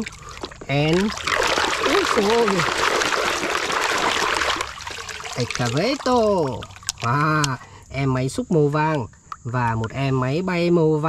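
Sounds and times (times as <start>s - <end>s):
water sloshing in plastic tub: 0.0s - 7.6s.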